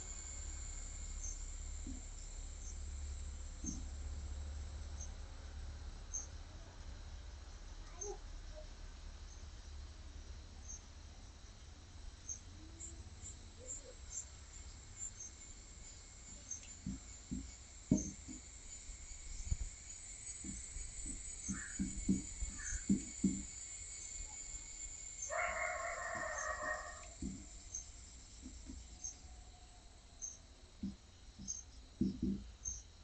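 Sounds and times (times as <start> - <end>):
insects chirping: 0.0 - 33.0
marker tapping on whiteboard: 16.8 - 18.4, 20.4 - 23.4, 30.8 - 32.4.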